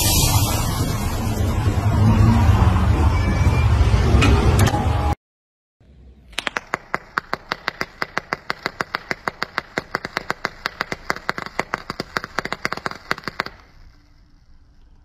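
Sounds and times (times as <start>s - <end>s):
liquid popping on hot coil: 6.3s - 14.9s.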